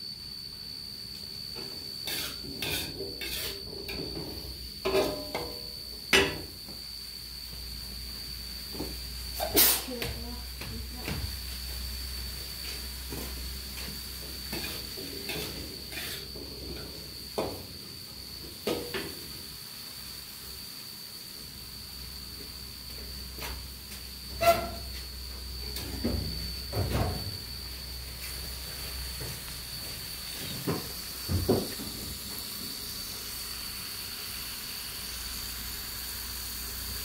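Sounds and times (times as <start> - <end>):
cookware and utensils clattering: 4.8 - 5.6.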